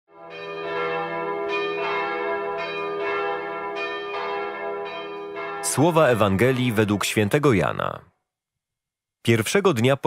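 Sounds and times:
bells ringing: 0.2 - 7.1.

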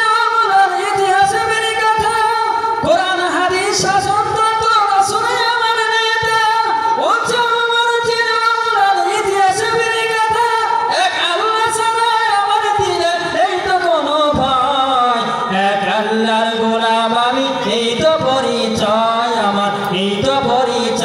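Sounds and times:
man singing into a microphone: 0.0 - 21.0.

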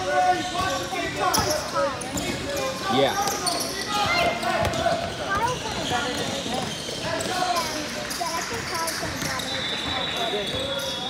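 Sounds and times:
people shouting in a gym: 0.0 - 7.7
basketball bouncing on court: 0.4 - 11.0.

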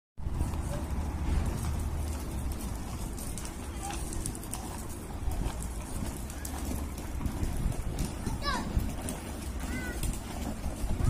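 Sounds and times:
faint distant voices: 0.6 - 11.0.

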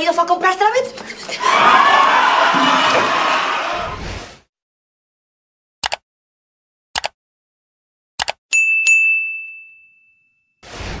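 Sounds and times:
double mouse click: 5.8 - 6.0, 7.0 - 7.2, 8.2 - 8.4
bright bell ding: 8.5 - 10.5.

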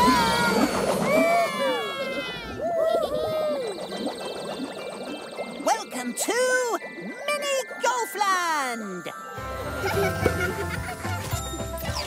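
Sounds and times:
falling whistle-like glide: 0.0 - 4.9
tinkling sparkle: 3.7 - 12.0.

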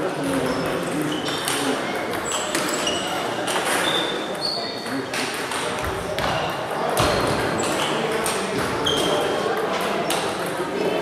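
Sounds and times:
table tennis balls clicking: 0.6 - 3.8
short high squeaks: 2.2 - 4.8, 8.8 - 9.4.

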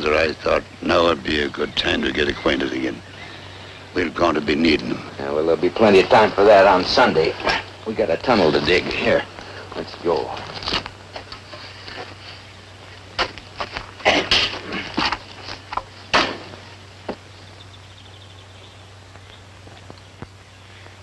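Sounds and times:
low steady hum: 0.0 - 21.0
pickaxe striking rocky ground: 16.1 - 16.6.

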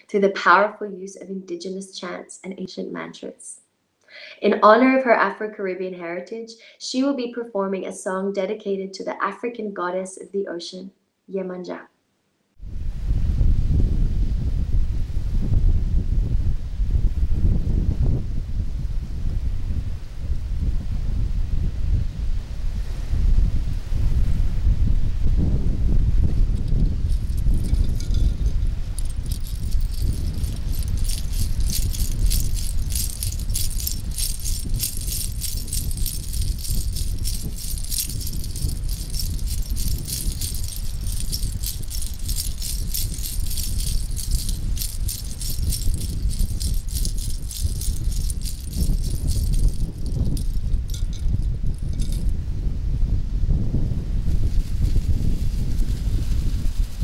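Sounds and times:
wind rumble on microphone: 12.6 - 57.0
shell rattle shaken: 26.5 - 52.3.

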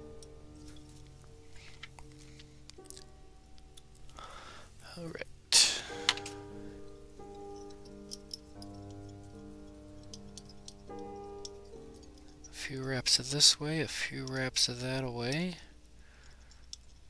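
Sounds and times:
soft background music: 0.0 - 17.0.

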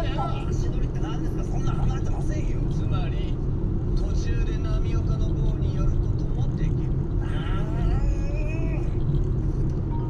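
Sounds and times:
voice from car audio: 0.0 - 3.4
car road and engine rumble: 0.0 - 10.0.

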